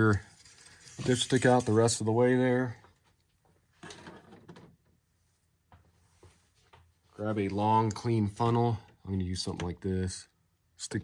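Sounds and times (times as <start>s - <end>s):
soft scrape and rustle: 0.0s - 2.2s.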